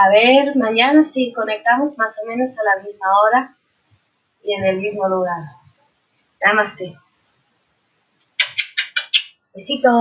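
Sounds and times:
woman blowing kisses: 8.3 - 9.4.

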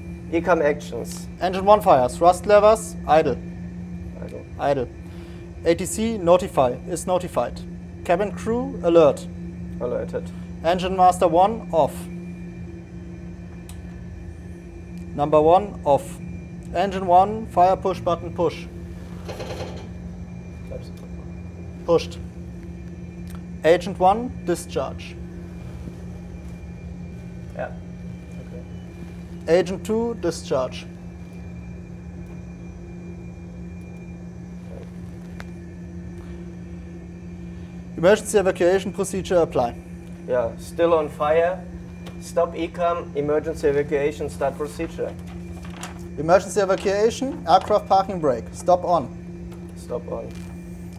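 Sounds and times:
cockpit hum and low rumble: 0.0 - 50.9
low drone with held tones: 0.0 - 50.9.

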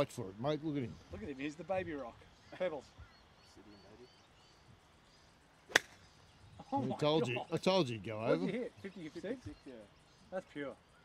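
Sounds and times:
golf club striking ball: 5.7 - 6.1.

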